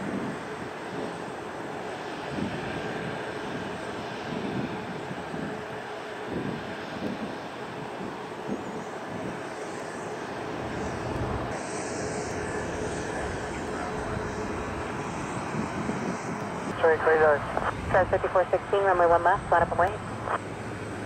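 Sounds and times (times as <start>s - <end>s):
jet engines taxiing: 0.0s - 21.0s.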